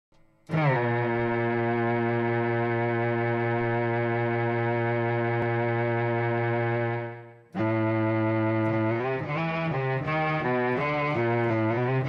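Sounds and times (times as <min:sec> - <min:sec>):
low bowed-like electric guitar note: 0:00.5 - 0:12.0.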